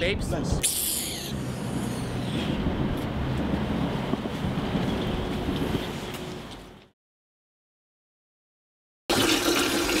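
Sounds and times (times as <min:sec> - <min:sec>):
low street rumble: 0:01.3 - 0:06.9
wind buffeting microphone: 0:01.6 - 0:06.7.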